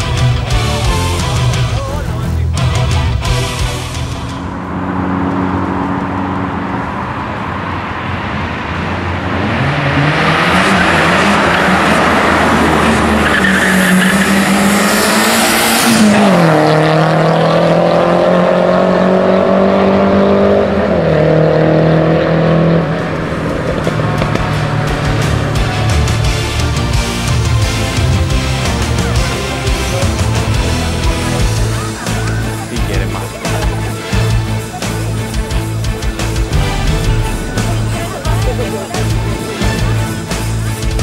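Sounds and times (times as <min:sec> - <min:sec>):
car engine revving: 0:00.0 - 0:41.0.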